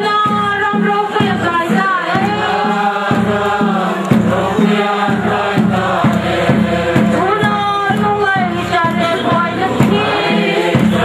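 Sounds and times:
crowd singing together: 0.0s - 11.0s
steady low beat: 0.0s - 11.0s.

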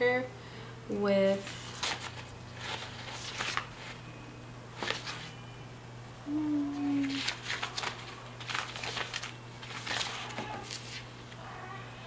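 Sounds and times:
paper rustling: 1.4s - 4.0s, 4.8s - 5.4s, 7.0s - 11.1s.

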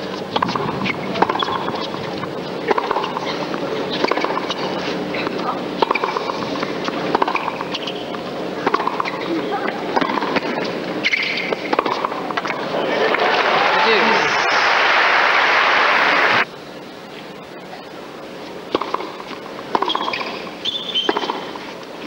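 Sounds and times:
arena crowd murmur: 0.0s - 11.0s, 11.6s - 18.7s
rackets striking tennis ball: 0.3s - 2.0s, 2.6s - 9.3s, 9.9s - 12.7s, 18.7s - 21.6s.

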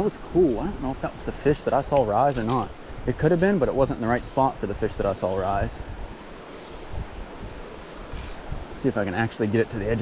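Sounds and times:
stream flowing over rocks: 1.0s - 9.5s.

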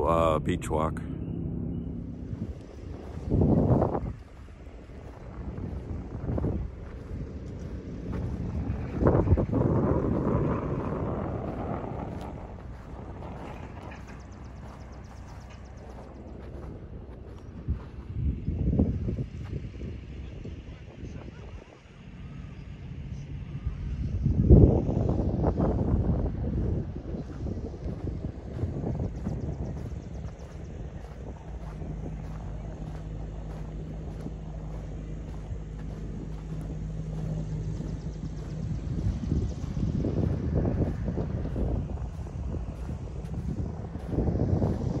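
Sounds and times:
faint low hum: 0.0s - 45.0s
wind buffeting microphone: 0.0s - 45.0s.

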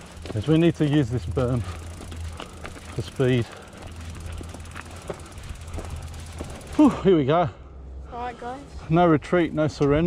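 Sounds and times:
faint bike clicks: 0.0s - 7.0s
bike rolling on dirt rumble: 0.0s - 10.0s
man talking: 0.3s - 1.7s, 3.0s - 3.6s.

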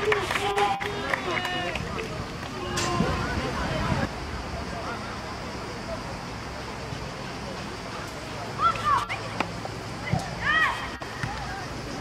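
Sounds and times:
children shouting: 8.5s - 12.0s.

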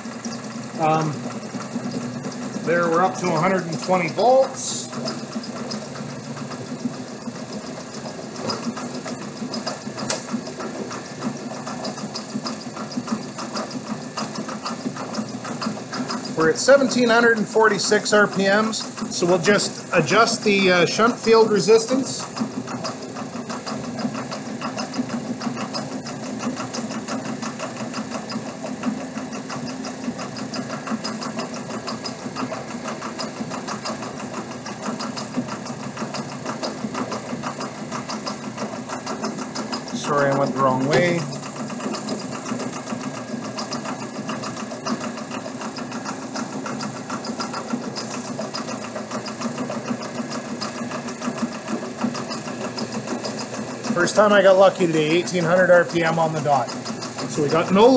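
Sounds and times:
electric motor humming: 0.0s - 57.9s
fine rapid ticking: 0.0s - 57.9s.

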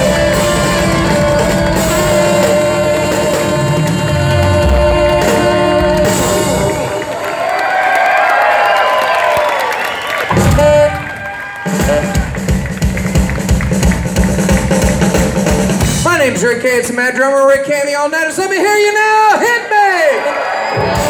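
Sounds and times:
fast drum kit beat: 0.0s - 7.1s, 10.2s - 17.7s
live rock band playing: 0.0s - 7.3s, 10.2s - 17.6s, 20.8s - 21.0s
loud drum hit: 10.3s - 16.6s.

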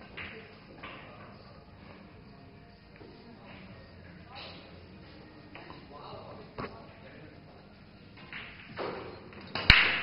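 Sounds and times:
faint background voices: 0.0s - 8.2s
quiet room hum: 0.0s - 9.5s.

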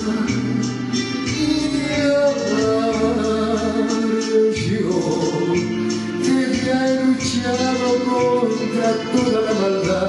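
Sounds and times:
karaoke backing track: 0.0s - 10.0s
man singing into microphone: 0.0s - 10.0s.

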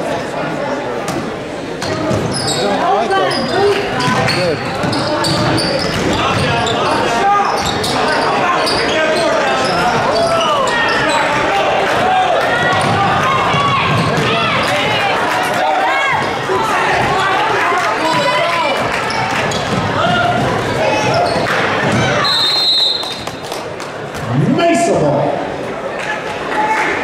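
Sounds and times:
murmur of voices: 0.0s - 27.0s
basketball bouncing on wooden floor: 4.8s - 6.6s.

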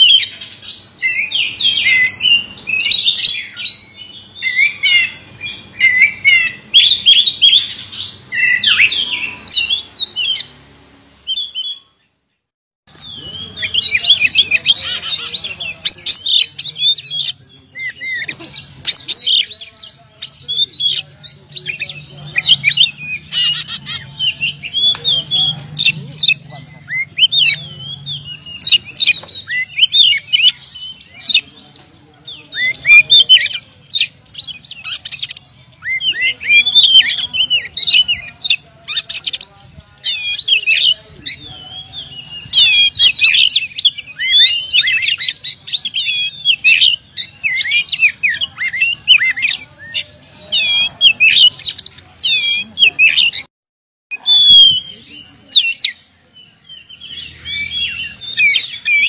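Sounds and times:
bird singing whistled phrases: 40.2s - 50.0s, 56.7s - 59.0s.

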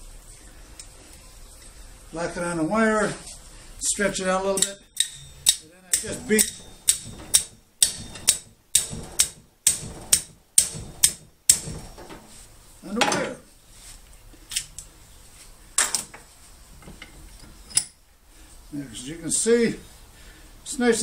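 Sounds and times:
tool striking copper wire: 4.6s - 12.1s.

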